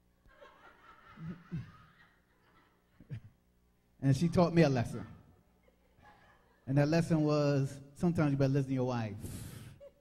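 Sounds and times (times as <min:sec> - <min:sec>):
faint chuckling laughter: 0:00.3 - 0:03.4.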